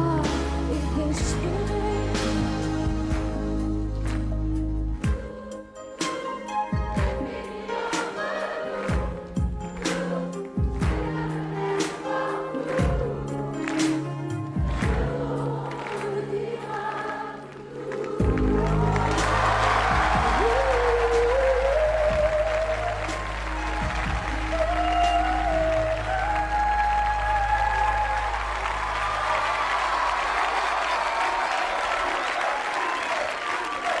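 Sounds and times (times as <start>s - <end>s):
band accompaniment: 0.0s - 16.1s, 18.1s - 26.4s
audience applause and cheering: 1.5s - 34.0s.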